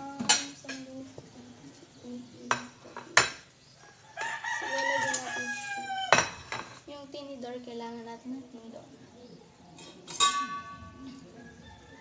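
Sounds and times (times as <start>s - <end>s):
rooster crowing: 3.8s - 6.3s, 11.0s - 12.0s
metal utensil clacking on wok: 9.8s - 10.9s.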